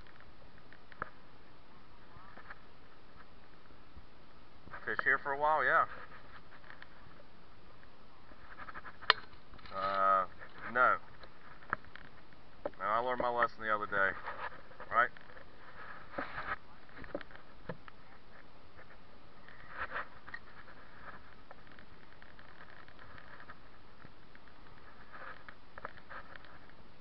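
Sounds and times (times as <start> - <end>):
faint steady hiss: 0.0 - 27.0.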